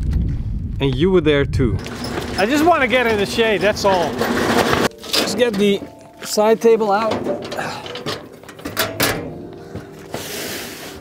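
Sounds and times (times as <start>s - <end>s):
metal knocks and clicks: 1.8s - 6.1s, 7.0s - 9.6s.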